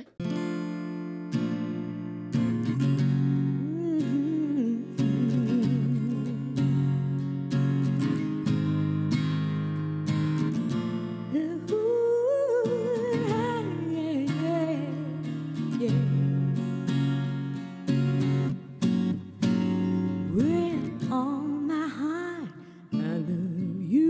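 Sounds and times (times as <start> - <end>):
acoustic guitar strumming chords: 0.0 - 24.0
woman singing long wavering notes: 3.5 - 6.9, 11.3 - 16.5, 20.3 - 24.0.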